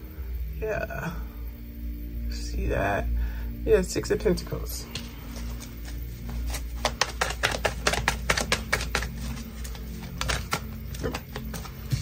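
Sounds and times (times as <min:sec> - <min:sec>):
cards being shuffled: 0:04.9 - 0:12.0.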